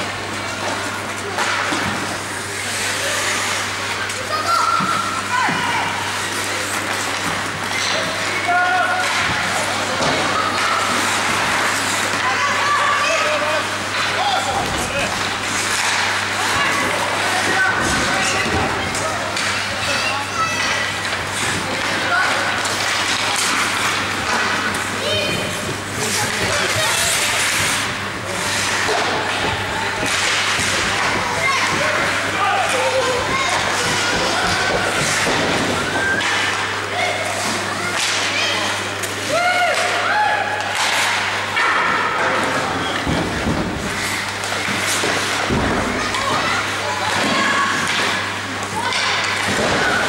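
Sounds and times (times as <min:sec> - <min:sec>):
hockey sticks and puck clacking: 0:00.3 - 0:05.3, 0:06.0 - 0:50.0
skates scraping on ice: 0:21.0 - 0:36.5
people shouting: 0:30.9 - 0:37.3, 0:39.2 - 0:42.4.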